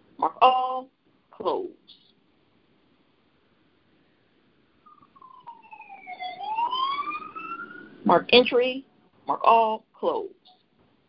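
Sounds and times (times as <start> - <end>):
faint wailing tone sliding in pitch: 4.9 - 8.1.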